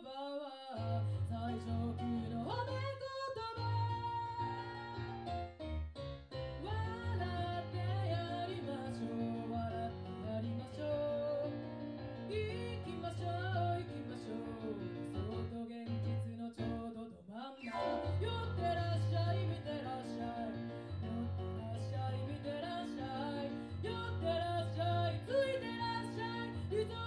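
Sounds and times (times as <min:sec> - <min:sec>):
woman singing: 0:00.0 - 0:05.3, 0:06.6 - 0:27.0
piano chords and bass line: 0:00.8 - 0:16.8, 0:17.7 - 0:27.0.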